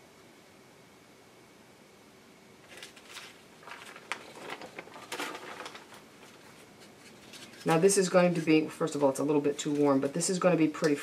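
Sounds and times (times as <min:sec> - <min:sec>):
sheet crinkling and rustling: 0:02.6 - 0:10.2.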